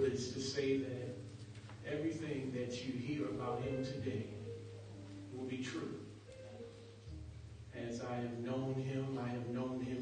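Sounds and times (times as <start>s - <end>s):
low instrumental accompaniment: 0.0s - 10.0s.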